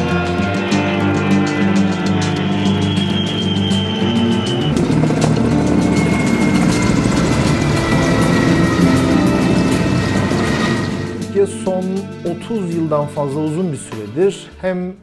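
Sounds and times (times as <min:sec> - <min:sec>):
helicopter in flight: 0:00.0 - 0:11.3
background music: 0:00.0 - 0:15.0.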